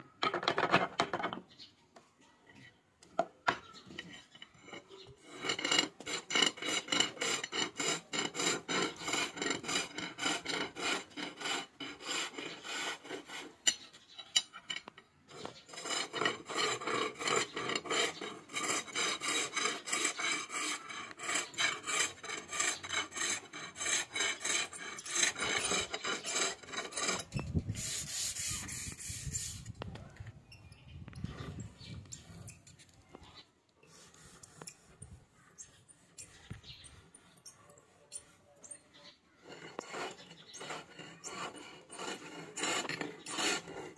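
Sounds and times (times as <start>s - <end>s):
chisel scraping wood on lathe: 3.8s - 29.8s, 39.4s - 43.9s.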